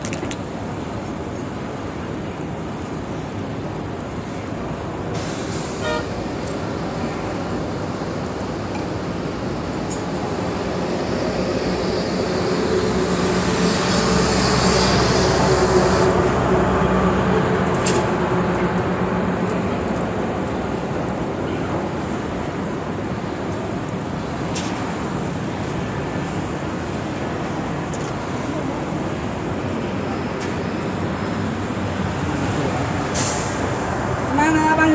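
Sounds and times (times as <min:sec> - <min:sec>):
heavy vehicle engine hum: 0:00.0 - 0:34.9
road traffic noise: 0:00.0 - 0:34.9.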